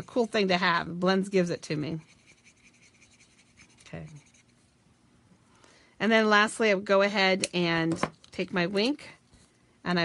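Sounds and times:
marker scratching on card: 1.9s - 4.6s.

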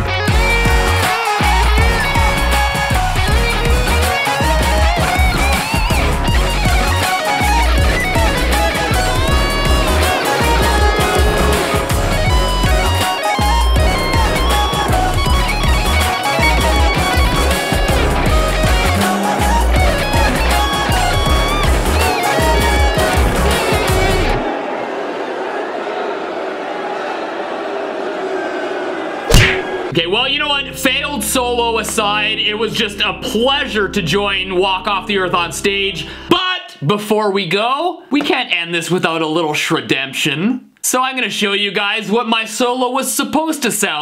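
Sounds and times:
band backing track: 0.0s - 24.4s
electric guitar solo: 0.0s - 24.4s
steady drum beat: 0.3s - 24.4s.

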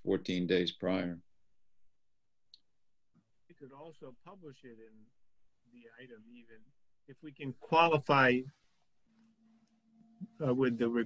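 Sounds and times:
man speaking: 0.0s - 1.2s, 3.5s - 5.1s, 5.7s - 8.5s, 10.2s - 11.0s.

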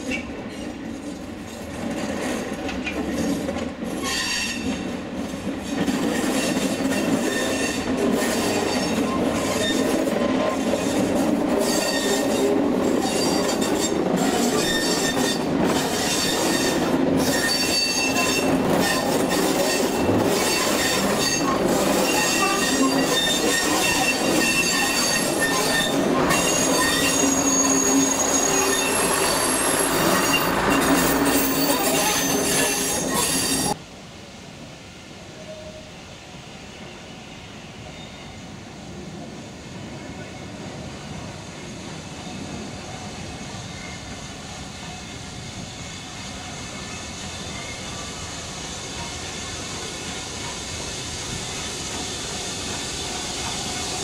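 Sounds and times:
train wheels rumbling on rail: 0.0s - 54.0s
high-pitched wheel squeal: 11.6s - 12.4s, 14.5s - 33.8s.

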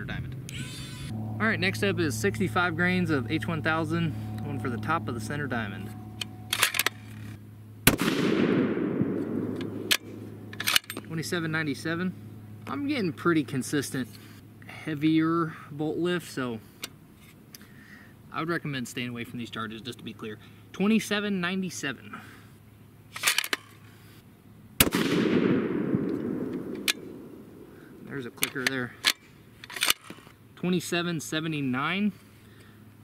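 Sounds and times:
rifle shot with echo: 7.8s - 10.6s, 24.8s - 28.1s
rifle bolt clicking: 26.0s - 27.3s.

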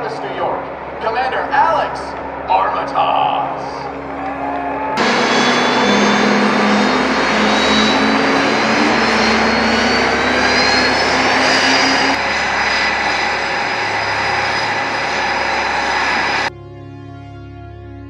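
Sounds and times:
high turbine whine: 0.0s - 16.5s
jet engines roaring: 0.0s - 16.5s.

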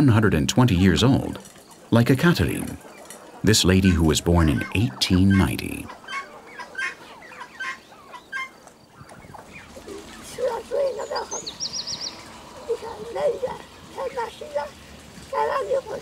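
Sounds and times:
turkeys and fowl calling: 2.5s - 16.0s
small bird trill: 6.1s - 14.5s.

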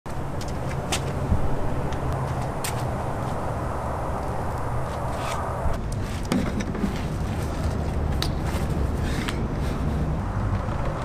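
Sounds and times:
outdoor background rumble: 0.1s - 11.0s.

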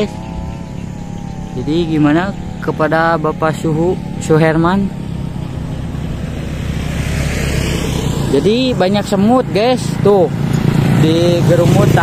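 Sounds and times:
motorcycle engines rumbling: 0.0s - 12.0s.

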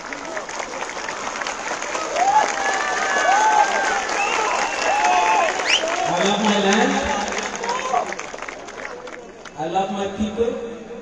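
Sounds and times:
crowd applauding and cheering: 0.0s - 9.6s.

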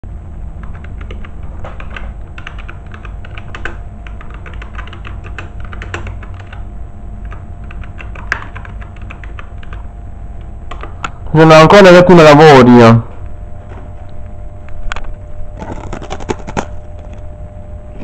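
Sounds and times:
low steady hum: 0.0s - 18.0s
typing on computer keyboard: 0.6s - 9.9s.

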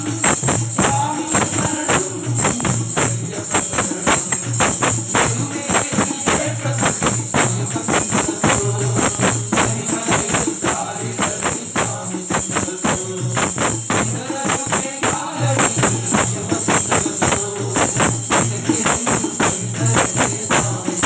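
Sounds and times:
men singing into microphone: 0.0s - 21.0s
tambourine beat: 0.0s - 21.0s.

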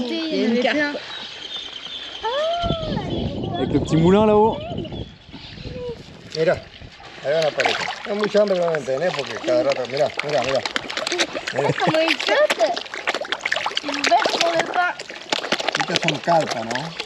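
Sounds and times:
voices talking: 0.0s - 12.9s, 13.8s - 15.1s, 15.8s - 17.0s
fish splashing at water surface: 5.4s - 17.0s.

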